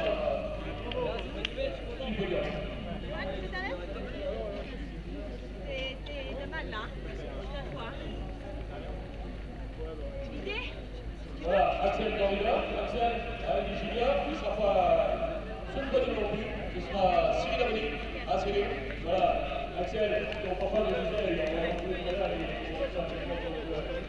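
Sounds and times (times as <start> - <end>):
people talking: 0.0 - 24.0.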